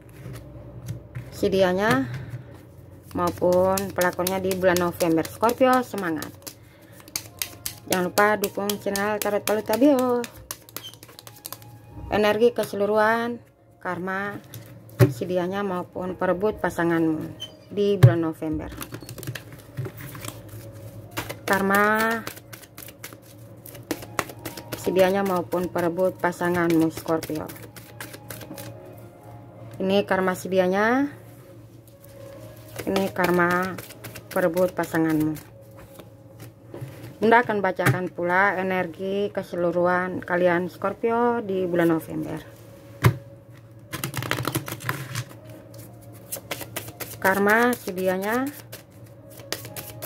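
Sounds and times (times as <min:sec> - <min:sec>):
cards being shuffled: 0:03.0 - 0:11.8, 0:18.7 - 0:25.6, 0:26.5 - 0:28.7, 0:32.6 - 0:36.1, 0:43.9 - 0:50.0.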